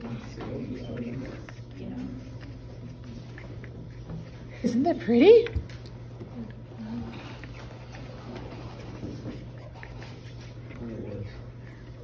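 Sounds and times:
paintbrush scratching on paper: 0.0 - 5.1, 7.0 - 12.0
steady low hum: 0.0 - 12.0.

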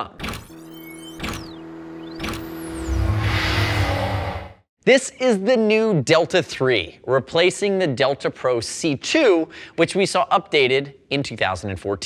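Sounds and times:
steady tone: 0.5 - 4.7
sweeping whooshes: 0.7 - 4.7
low noisy swell: 1.6 - 4.7.

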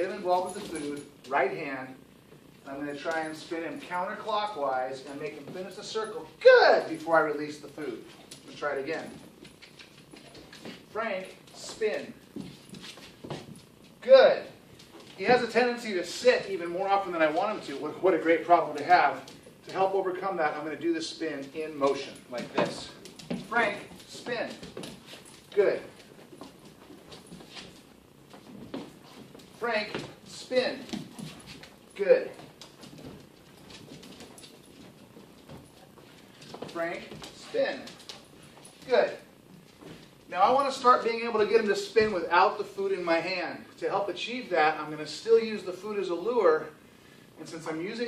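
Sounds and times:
dog paws tapping on vinyl floor: 0.0 - 44.1
person's footsteps walking: 5.2 - 14.0, 14.6 - 20.6, 21.2 - 41.1.

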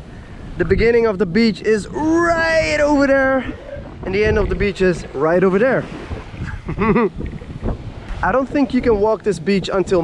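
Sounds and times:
small waves breaking on beach: 0.0 - 10.0
wind buffeting microphone: 0.0 - 10.0
person laughing: 6.4 - 7.2.

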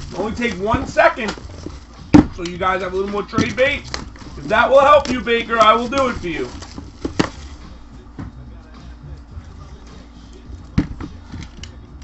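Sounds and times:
box set down with a knock: 2.1 - 2.4, 6.0 - 7.4.

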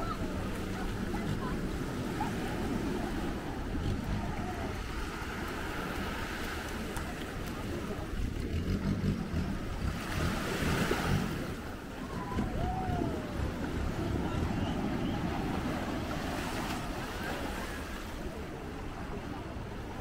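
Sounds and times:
small waves washing on sand: 0.0 - 20.0
wind rumbling on microphone: 0.0 - 20.0.

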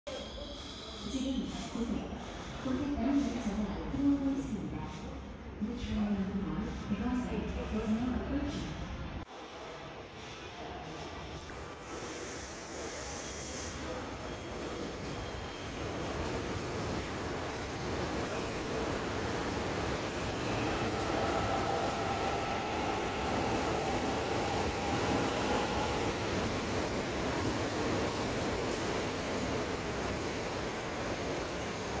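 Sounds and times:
train wheels and motors rumbling: 13.8 - 32.0
faint whine: 13.9 - 32.0.

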